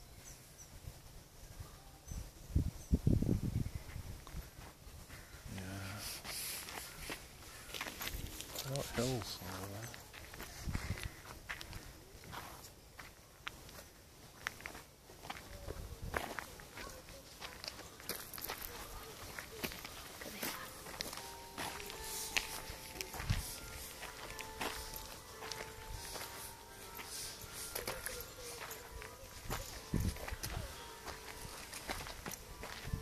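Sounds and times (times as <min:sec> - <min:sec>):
footsteps outdoors: 0:03.0 - 0:33.0.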